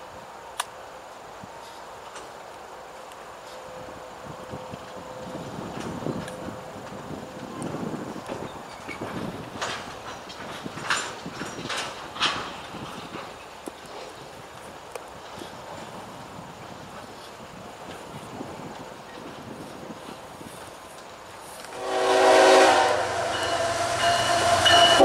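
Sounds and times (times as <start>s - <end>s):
freight train wheels rumbling: 0.0s - 25.0s.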